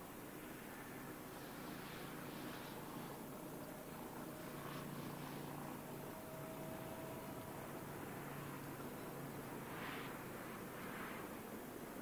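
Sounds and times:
distant electric train rumbling: 0:00.0 - 0:12.0
faint train whine: 0:00.0 - 0:12.0.

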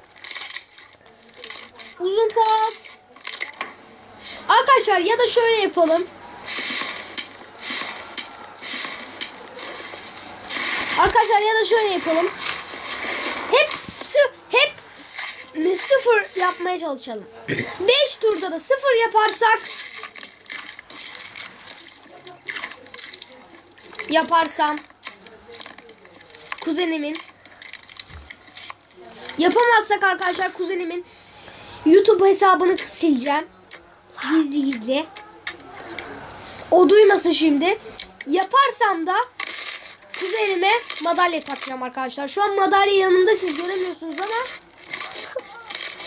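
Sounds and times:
slime crackling and popping: 0:00.0 - 0:04.7, 0:05.3 - 0:14.0, 0:17.6 - 0:30.7, 0:38.0 - 0:41.8, 0:43.2 - 0:46.0.

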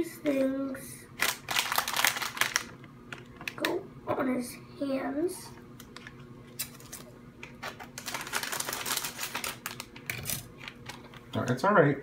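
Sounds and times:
foil wrapper crinkling: 0:01.2 - 0:02.8, 0:06.0 - 0:11.3.

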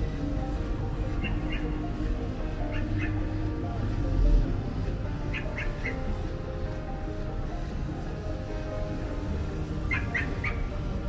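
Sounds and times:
low street hum: 0:00.0 - 0:11.0
high squawks: 0:01.1 - 0:02.0, 0:05.3 - 0:06.1, 0:09.8 - 0:10.8.

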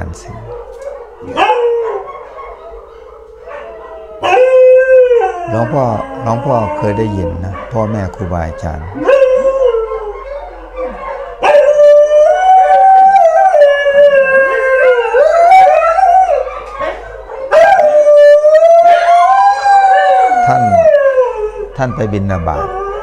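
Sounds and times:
dogs howling: 0:00.0 - 0:23.0.

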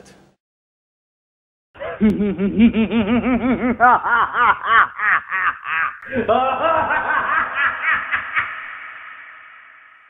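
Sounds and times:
person laughing: 0:01.8 - 0:09.2.

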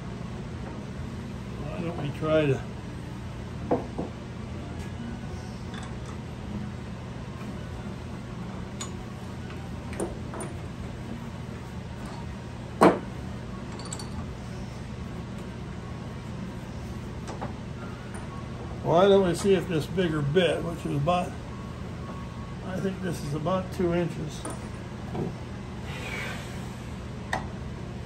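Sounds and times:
low shop hum: 0:00.0 - 0:28.0.

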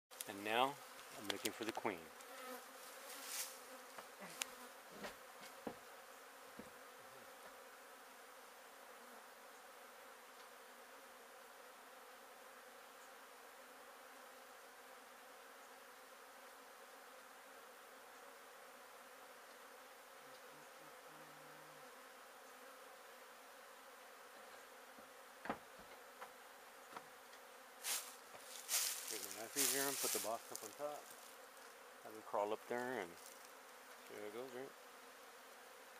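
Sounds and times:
honey bees buzzing: 0:00.1 - 0:35.9.

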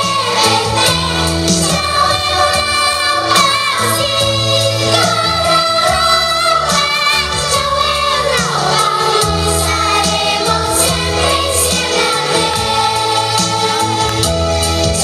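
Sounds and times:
girl singing lead: 0:00.0 - 0:14.4
children's choir singing: 0:00.0 - 0:15.0
instrumental backing with bass: 0:00.0 - 0:15.0.

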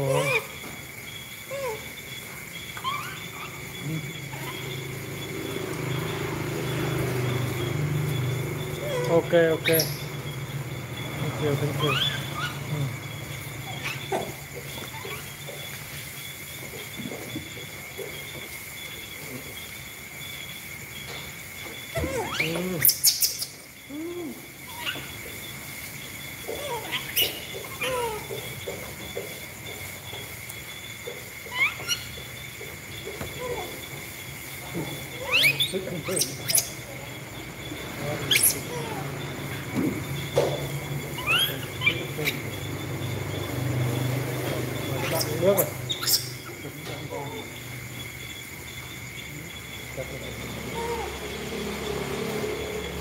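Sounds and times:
insects trilling: 0:00.0 - 0:53.0
monkeys cooing and squeaking: 0:00.0 - 0:53.0.

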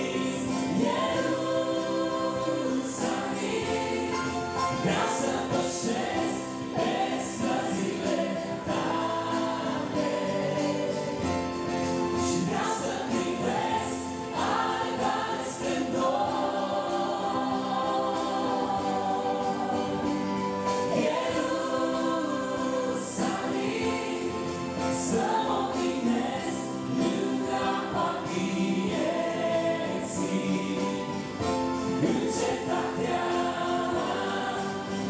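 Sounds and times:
electronic keyboard chords: 0:00.0 - 0:35.0.

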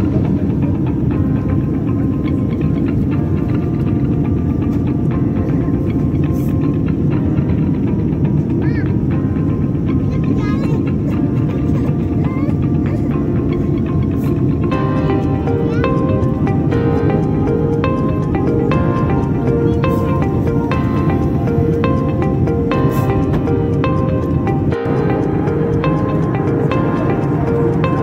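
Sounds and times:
airliner cabin roar: 0:00.0 - 0:28.0
background music: 0:00.0 - 0:28.0.

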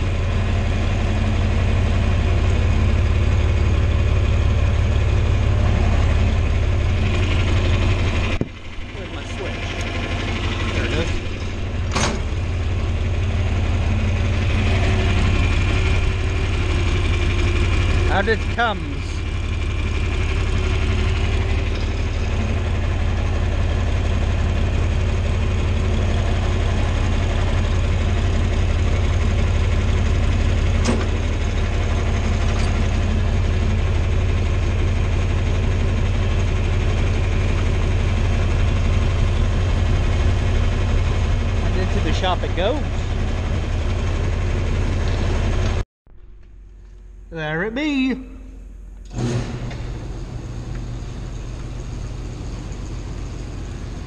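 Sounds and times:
tractor engine running: 0:00.0 - 0:54.0.

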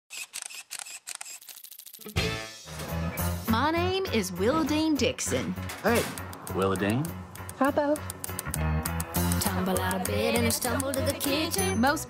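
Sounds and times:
camera shutter clicks: 0:00.1 - 0:01.7.

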